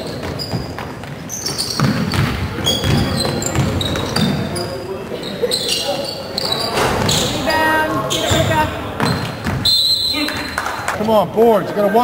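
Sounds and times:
basketball bouncing on court: 0:00.0 - 0:04.5, 0:08.2 - 0:09.7
sneakers squeaking: 0:00.0 - 0:10.9
voices echoing: 0:00.0 - 0:12.0.

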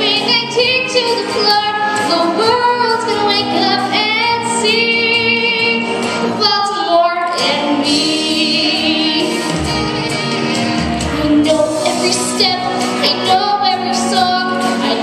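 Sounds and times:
girl singing into a microphone: 0:00.0 - 0:09.5, 0:11.1 - 0:15.0.

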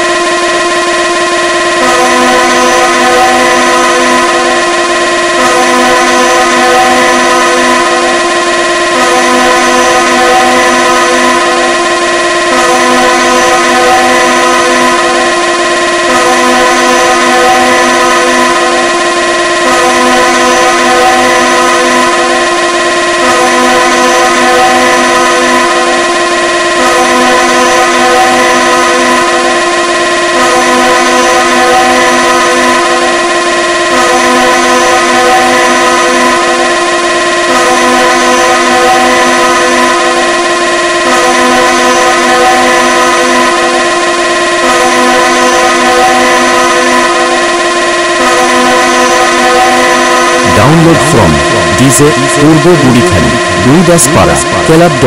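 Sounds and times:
dance music with blaring horn sample: 0:50.4 - 0:55.0.

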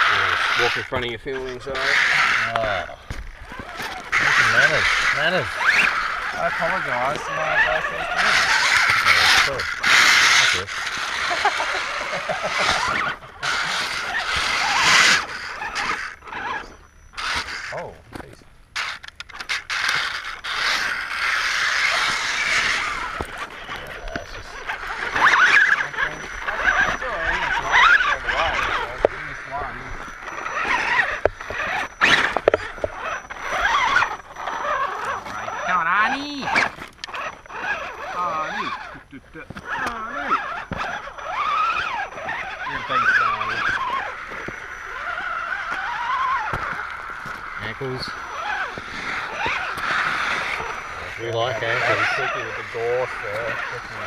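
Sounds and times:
toy car motors and gears whining: 0:00.0 - 0:54.0
tyres knocking and scraping on rock: 0:00.4 - 0:07.3, 0:07.9 - 0:35.8, 0:36.4 - 0:38.1, 0:38.7 - 0:52.4.

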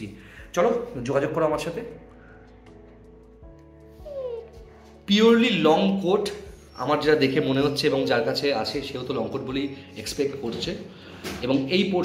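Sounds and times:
background music with sustained tones: 0:00.0 - 0:12.0
puppy whining: 0:04.0 - 0:05.0, 0:06.3 - 0:08.5.

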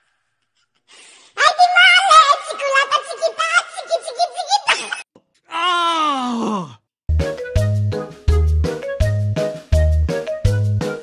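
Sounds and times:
high wavering laughing voice: 0:03.5 - 0:05.0.

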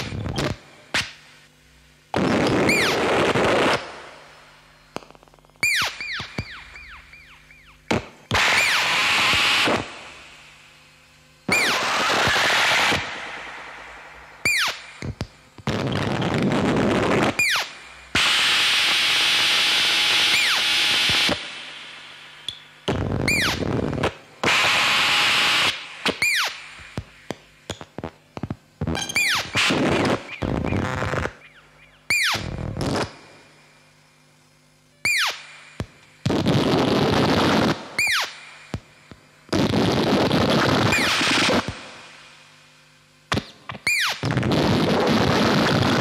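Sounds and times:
harsh electronic synthesizer noise: 0:00.0 - 0:00.6, 0:02.1 - 0:04.4, 0:05.5 - 0:10.4, 0:11.5 - 0:22.1, 0:22.9 - 0:27.4, 0:28.8 - 0:33.1
falling electronic chirps: 0:02.6 - 0:03.1, 0:05.6 - 0:09.7, 0:14.1 - 0:15.2, 0:17.2 - 0:21.3, 0:23.2 - 0:23.7, 0:24.5 - 0:26.8, 0:28.9 - 0:33.1, 0:35.0 - 0:35.7, 0:38.0 - 0:38.4, 0:43.8 - 0:44.3.

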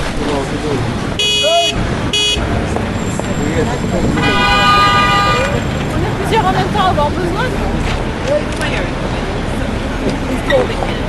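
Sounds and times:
traffic noise: 0:00.0 - 0:11.0
car horns: 0:01.2 - 0:05.8
babble of voices: 0:02.6 - 0:11.0.

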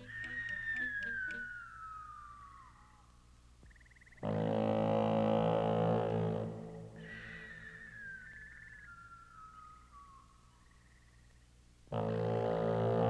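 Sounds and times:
whistling tone gliding downward: 0:00.0 - 0:03.1, 0:07.0 - 0:10.5.

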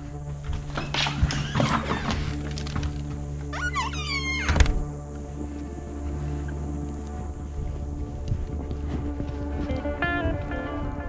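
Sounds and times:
background music: 0:00.0 - 0:11.0
dogs scrambling: 0:00.3 - 0:04.4
house door opening: 0:00.4 - 0:05.1.

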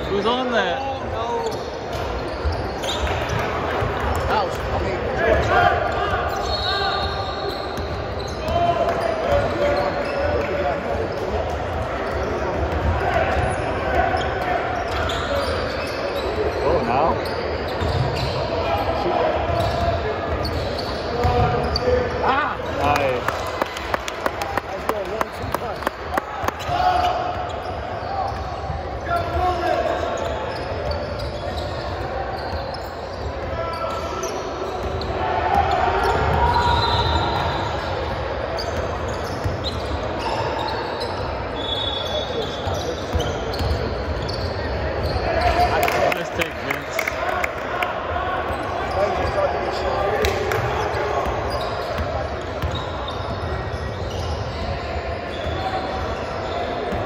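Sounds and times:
voices echoing in gym: 0:00.0 - 0:57.0.

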